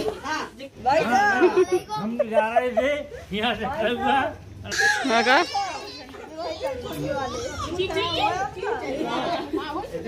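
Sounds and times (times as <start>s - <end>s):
people talking over one another: 0.0s - 10.0s
children's voices: 4.9s - 10.0s.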